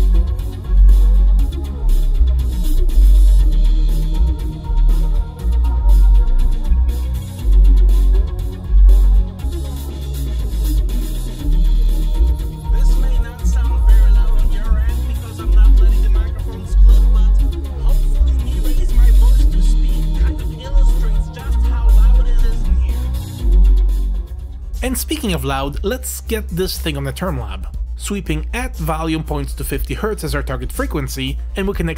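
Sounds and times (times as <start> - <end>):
loud music on car stereo: 0.0 - 26.7
deep bass notes: 0.0 - 31.9.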